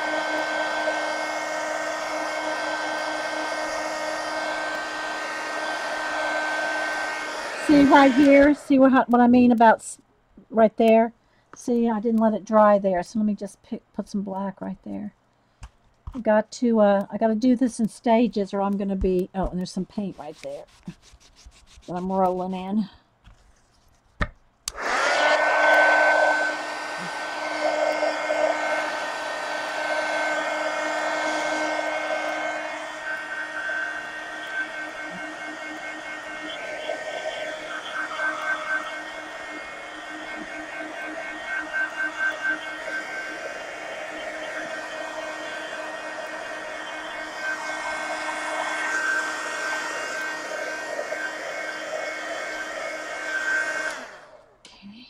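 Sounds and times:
hot-air dryer whining: 0.0s - 9.6s, 24.7s - 54.6s.

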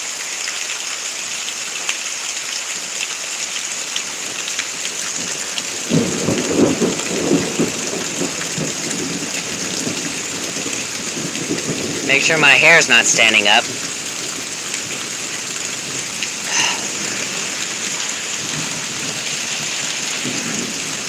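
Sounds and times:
heavy rain: 0.0s - 21.0s
close raindrops ticking: 2.8s - 21.0s.

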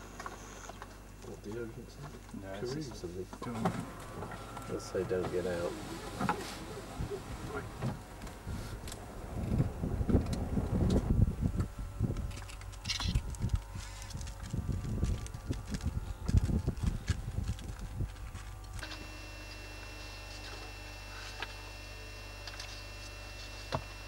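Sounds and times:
steady low hum: 0.0s - 24.0s
wind buffeting microphone: 6.8s - 18.8s.

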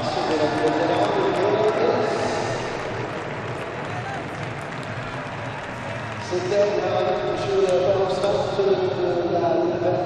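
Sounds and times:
amplified voice over loudspeakers: 0.0s - 2.7s, 6.2s - 10.0s
crowd hubbub in large hall: 0.0s - 10.0s.

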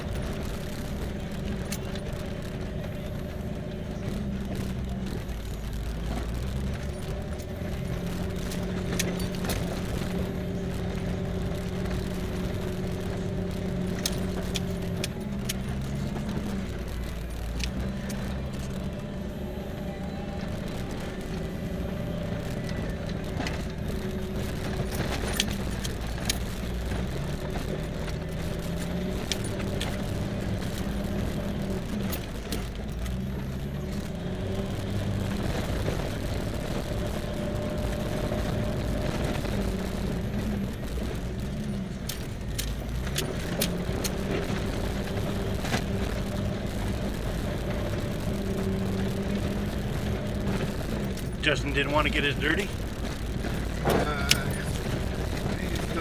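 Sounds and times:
truck engine running: 0.0s - 56.0s
vehicle clicks and rattles: 0.0s - 56.0s.

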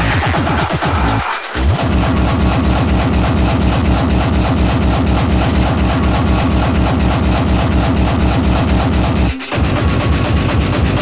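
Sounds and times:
fast heavy kick drum: 0.0s - 11.0s
hardcore electronic dance music: 0.0s - 11.0s.

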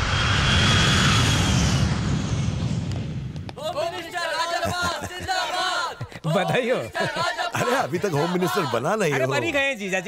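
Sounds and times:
high jet engine whine: 0.0s - 3.6s
jet engines rushing: 0.0s - 3.6s.

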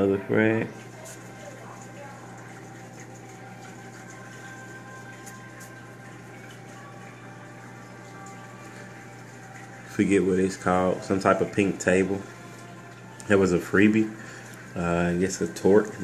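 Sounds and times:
aquarium water circulating: 0.0s - 16.0s
low equipment hum: 0.0s - 16.0s.

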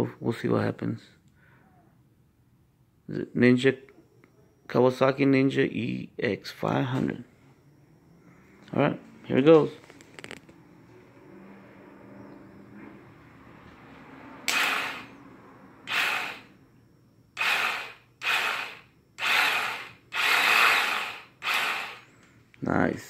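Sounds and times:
electric starter motor whirring: 14.4s - 15.2s, 15.8s - 16.6s, 17.4s - 22.2s.

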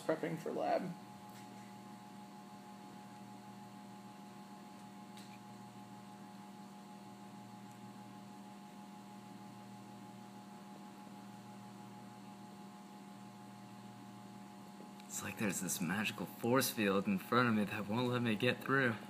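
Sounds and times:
low electrical hum: 0.0s - 19.0s.

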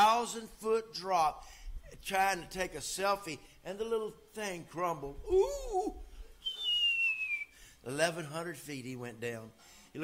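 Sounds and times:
man whistling falling note: 6.4s - 7.7s.

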